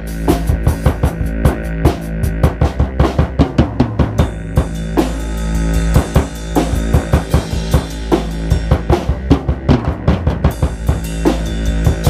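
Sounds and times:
drum kit playing: 0.0s - 12.0s
low bass notes: 0.0s - 12.0s.

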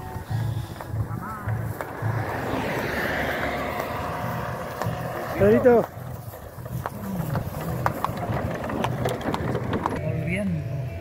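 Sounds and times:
engine running at low revs: 0.0s - 11.0s.

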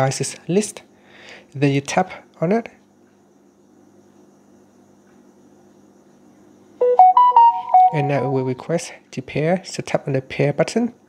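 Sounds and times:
faint steady hum: 0.0s - 11.0s
smartphone alert chime: 6.8s - 8.6s.

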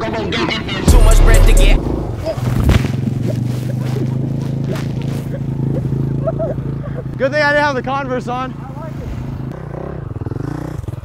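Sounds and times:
dirt bike engine idling: 0.9s - 11.0s
dirt bike hitting ground: 1.8s - 6.2s.

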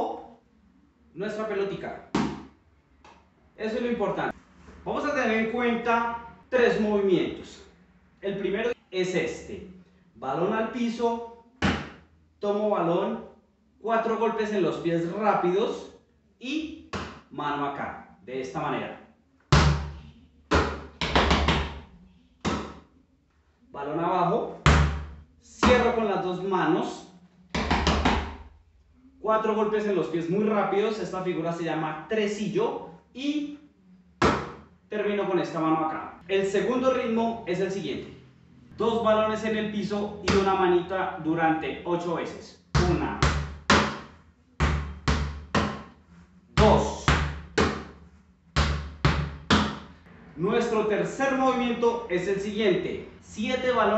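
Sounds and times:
ball bouncing on hard floor: 2.2s - 2.5s, 11.6s - 12.0s, 16.9s - 17.3s, 19.5s - 21.8s, 22.4s - 22.8s, 24.7s - 25.9s, 27.6s - 28.4s, 34.2s - 34.6s, 42.8s - 46.0s, 46.6s - 48.0s, 48.6s - 50.0s
ball caught with a thud: 2.2s - 2.5s, 11.6s - 12.0s, 16.9s - 17.3s, 22.4s - 22.8s, 34.2s - 34.6s
hand slap: 2.2s - 3.2s, 11.6s - 12.0s, 16.9s - 17.3s, 19.5s - 21.8s, 22.4s - 22.9s, 27.6s - 28.4s, 34.2s - 34.6s, 42.8s - 46.0s, 46.6s - 48.0s, 48.6s - 49.9s
foot stomps: 11.6s - 12.0s, 16.9s - 17.3s, 22.4s - 22.8s, 42.8s - 45.9s.

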